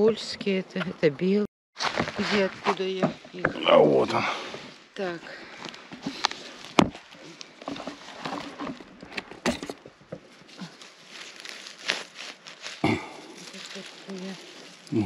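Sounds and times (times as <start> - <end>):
leaves and needles rustling underfoot: 1.8 - 9.0, 9.9 - 15.0
twigs snapping: 10.6 - 15.0.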